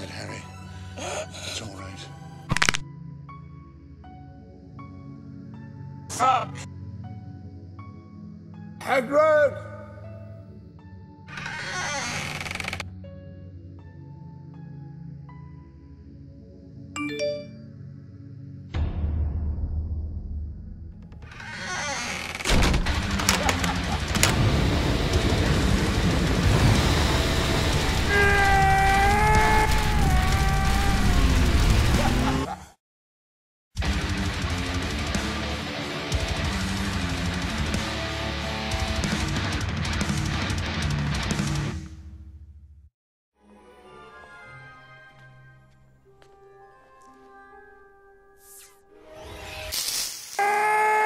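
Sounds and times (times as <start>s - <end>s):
fire cracking: 22.1s - 32.3s
large fire roaring: 22.8s - 32.5s.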